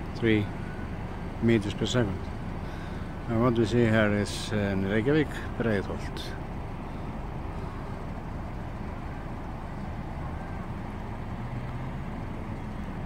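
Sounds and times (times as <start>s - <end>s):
low outdoor background rumble: 0.0s - 13.0s.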